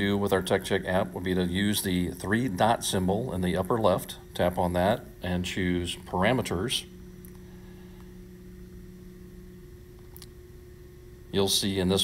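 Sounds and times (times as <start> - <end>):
low two-tone hum: 0.0 - 12.0.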